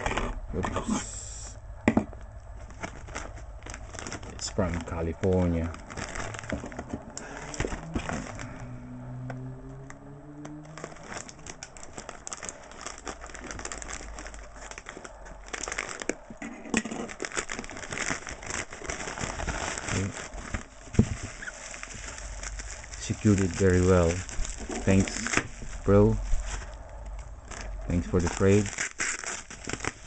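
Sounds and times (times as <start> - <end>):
plastic packaging crinkling: 2.4 - 8.7, 10.4 - 30.0.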